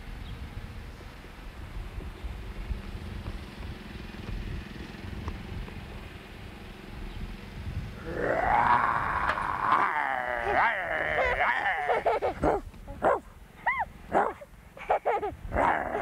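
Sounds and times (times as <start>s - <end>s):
wind rumble on microphone: 0.0s - 13.2s, 15.2s - 16.0s
child squealing: 8.4s - 12.5s, 13.6s - 13.9s.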